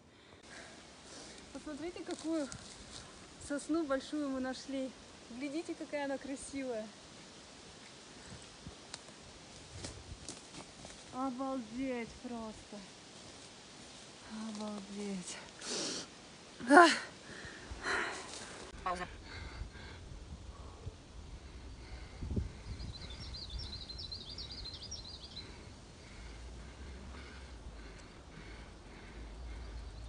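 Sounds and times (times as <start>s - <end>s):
outdoor background hiss: 0.0s - 30.0s
soft clicks and rustles: 14.4s - 15.6s
songbird chirping: 21.4s - 30.0s.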